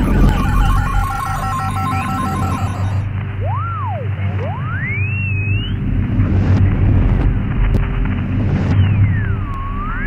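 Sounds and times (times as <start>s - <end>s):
short beeping tones: 0.0s - 3.0s
low drone: 0.0s - 10.0s
sweeping radio whistles: 3.4s - 5.8s, 8.7s - 10.0s.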